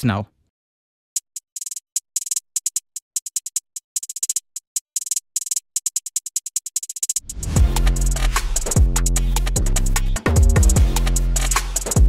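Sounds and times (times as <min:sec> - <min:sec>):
electronic hi-hat ticks: 0:01.2 - 0:12.0.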